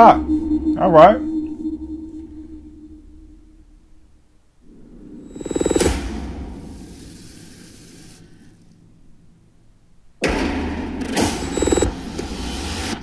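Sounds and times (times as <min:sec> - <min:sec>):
noisy tail: 0:04.7 - 0:07.2, 0:11.2 - 0:12.1.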